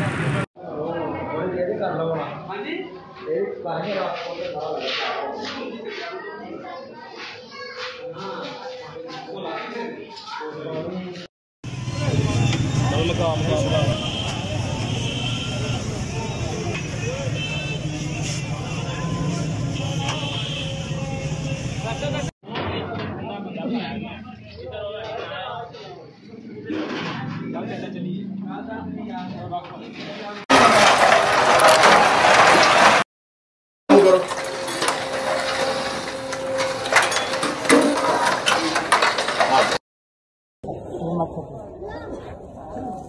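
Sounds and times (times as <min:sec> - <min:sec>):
background chatter of voices: 0:00.6 - 0:11.3, 0:11.9 - 0:31.7, 0:40.6 - 0:43.0
ladles scraping metal pots: 0:30.5 - 0:33.0, 0:33.9 - 0:39.8
steady background noise: 0:33.9 - 0:39.8.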